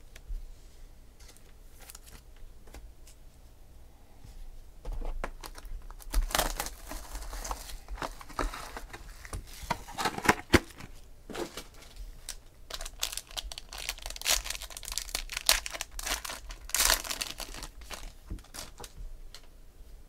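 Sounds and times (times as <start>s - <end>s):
foil pack crinkling and tearing: 5.4s - 10.9s, 11.5s - 19.0s.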